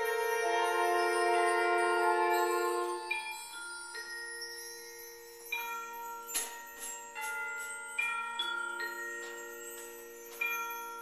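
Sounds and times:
held wind chords: 0.0 - 3.5
struck bell-like notes: 0.0 - 4.7.

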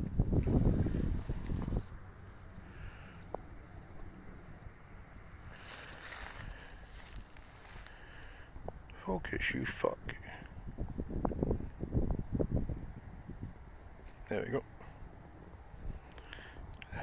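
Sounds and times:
wind buffeting microphone: 0.0 - 14.0.

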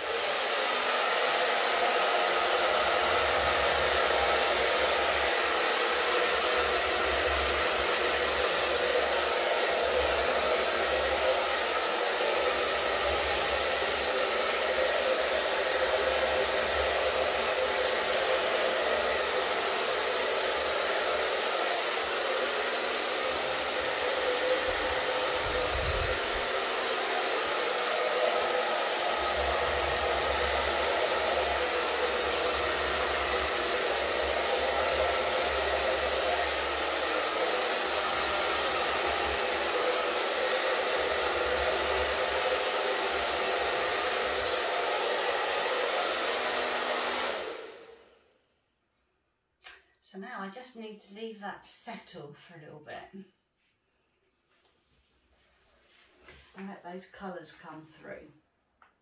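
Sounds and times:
hair dryer blowing: 0.0 - 48.4.

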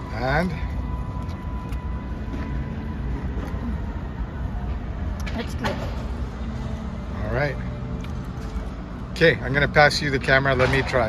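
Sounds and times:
low rumble of city traffic: 0.0 - 11.0.

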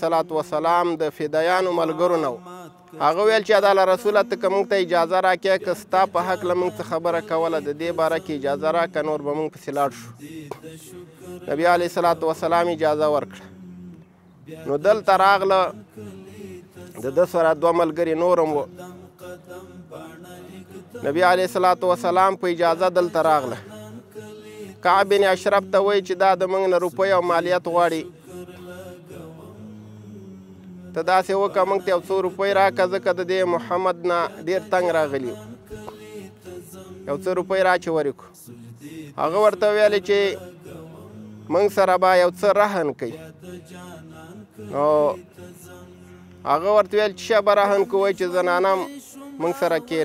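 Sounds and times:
faint vocal chanting: 0.0 - 50.0.

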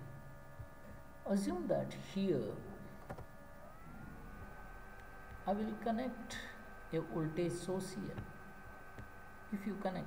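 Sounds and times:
low hum: 0.0 - 10.0
steady high whine: 0.0 - 10.0.

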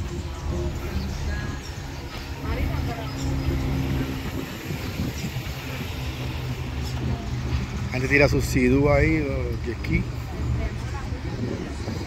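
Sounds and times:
faint voices: 0.0 - 12.0
vehicle engine idling: 0.0 - 12.0.

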